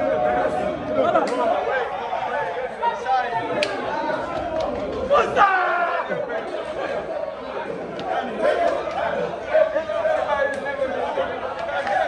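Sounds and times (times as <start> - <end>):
men talking over one another: 0.0 - 12.0.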